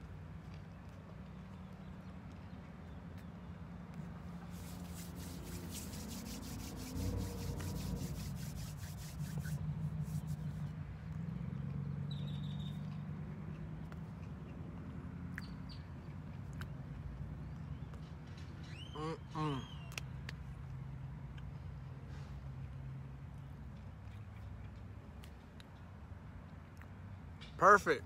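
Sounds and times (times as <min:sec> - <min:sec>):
crunchy chewing: 0:23.8 - 0:25.8.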